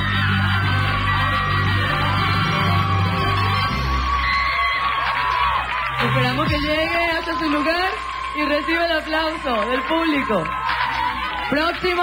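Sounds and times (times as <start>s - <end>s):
background music with bass: 0.0s - 7.6s
audience cheering and yelling: 0.0s - 12.0s.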